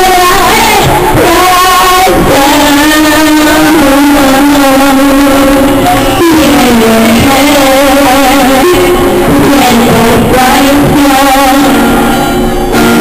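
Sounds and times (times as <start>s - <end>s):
strummed acoustic guitar: 0.0s - 13.0s
woman singing into a microphone: 0.0s - 13.0s.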